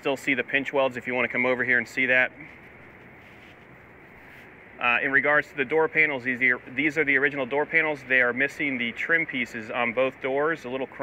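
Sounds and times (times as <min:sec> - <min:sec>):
man speaking: 0:00.0 - 0:02.6, 0:04.8 - 0:11.0
faint outdoor hiss: 0:00.0 - 0:11.0.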